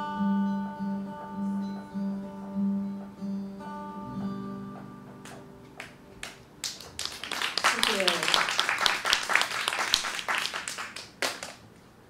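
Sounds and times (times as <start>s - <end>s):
audience applauding: 5.8s - 11.6s.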